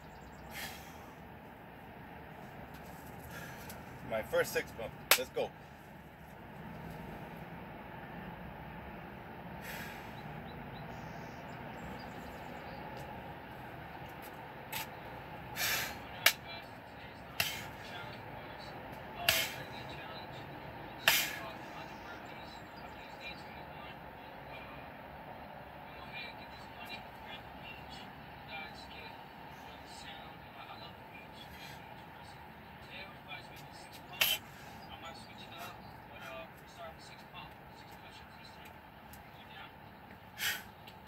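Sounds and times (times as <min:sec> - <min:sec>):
steady background hush: 0:00.0 - 0:41.0
hard breaths: 0:00.3 - 0:01.6, 0:02.3 - 0:07.4, 0:09.5 - 0:12.4, 0:13.5 - 0:20.0, 0:20.6 - 0:22.9, 0:31.0 - 0:32.8, 0:33.8 - 0:36.8, 0:40.1 - 0:41.0.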